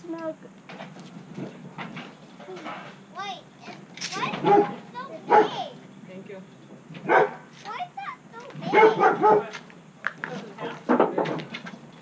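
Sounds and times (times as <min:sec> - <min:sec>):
dog yipping: 0:04.3 - 0:05.7, 0:08.7 - 0:09.5
dog barking: 0:04.4 - 0:05.7, 0:07.0 - 0:07.5, 0:08.7 - 0:09.6.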